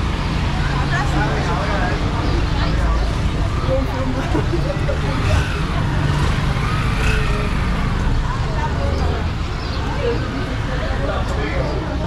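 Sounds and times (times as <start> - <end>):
passersby talking: 0.0 - 12.0
road traffic rumble: 0.0 - 12.0.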